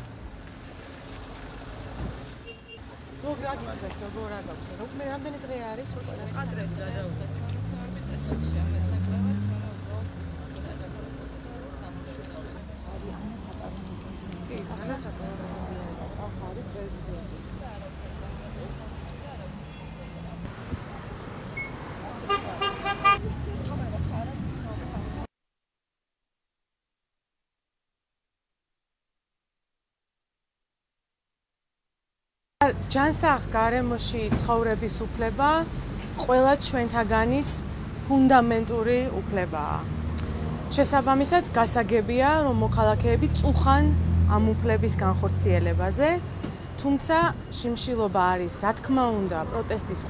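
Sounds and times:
city street traffic rumble: 0.0 - 25.3, 32.6 - 50.0
car horn toots: 22.3 - 23.2.

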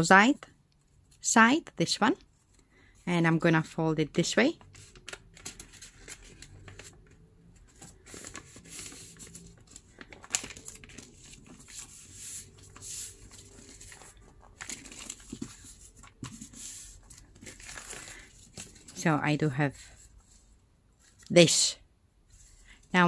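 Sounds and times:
newspaper rustling and crinkling: 4.6 - 21.3.

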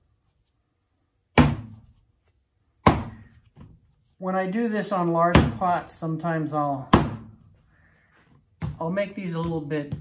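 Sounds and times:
clay thudding on table: 1.3 - 1.9, 2.8 - 3.8.

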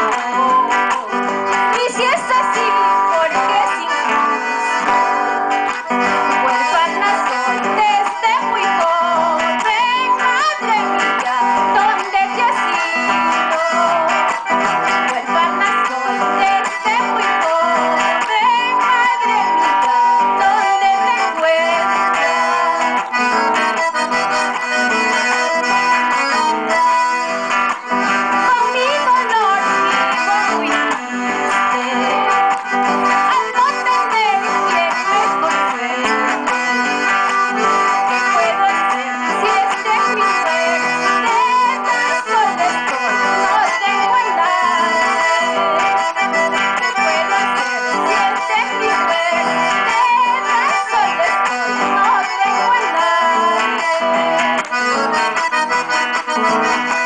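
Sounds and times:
accordion: 0.0 - 57.0
acoustic guitar: 0.0 - 57.0
woman singing into a microphone: 0.0 - 57.0.

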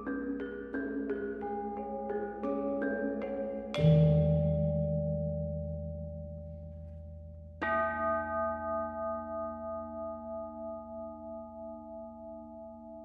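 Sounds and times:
metal bowl ringing: 0.0 - 11.4.

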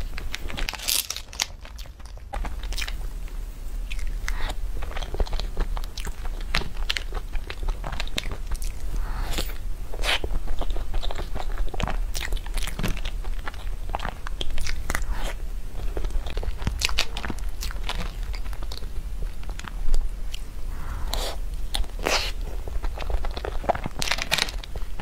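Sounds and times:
steady low hum: 0.0 - 25.0
chewing with wet clicks: 3.9 - 8.8, 10.0 - 15.1, 21.1 - 24.8.

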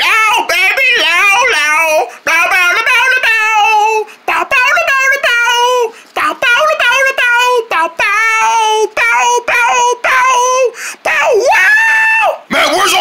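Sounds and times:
person speaking fast: 0.0 - 11.4, 12.5 - 13.0
voice imitating guitar riff: 0.0 - 11.4.

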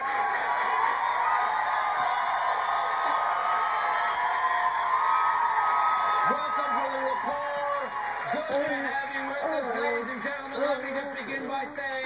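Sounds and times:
studio audience cheering and whooping: 0.0 - 12.0.

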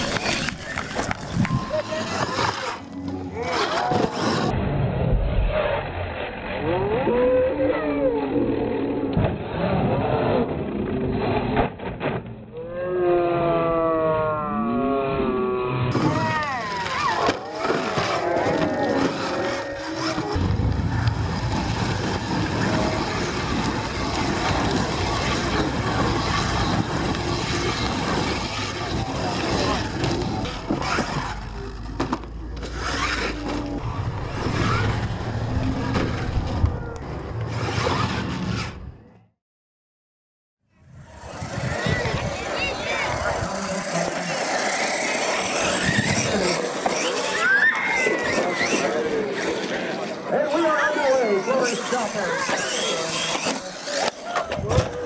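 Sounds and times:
crowd chattering: 0.0 - 4.5, 40.8 - 55.0
electric toy truck motors whining: 15.9 - 20.4, 41.0 - 55.0.

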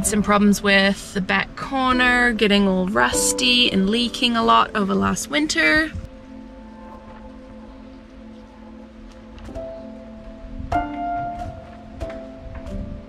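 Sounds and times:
background music soft held tones: 0.0 - 13.0.

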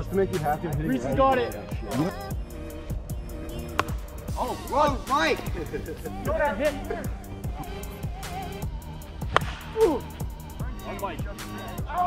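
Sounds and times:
background music with steady beat: 0.0 - 12.0
plastic bat hitting ball: 3.7 - 4.0, 9.2 - 9.9.

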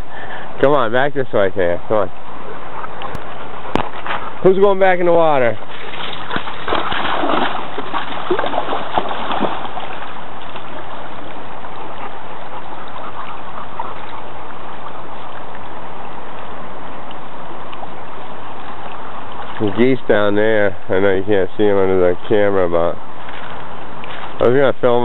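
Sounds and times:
river water rushing: 2.2 - 20.9
dog splashing in water: 5.6 - 15.4.

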